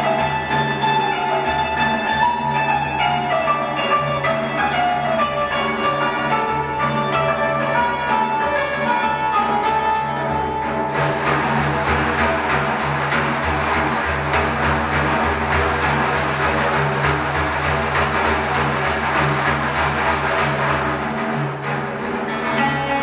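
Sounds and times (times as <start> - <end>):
santur melody: 0.0 - 23.0
frame drum fast strokes: 10.7 - 22.6.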